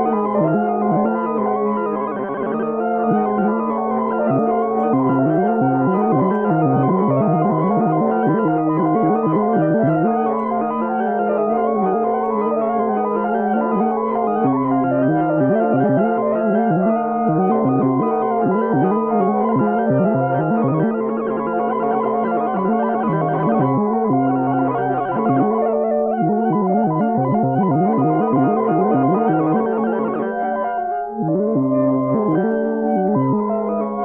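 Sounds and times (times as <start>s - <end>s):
electronic synthesizer music: 0.0s - 34.0s.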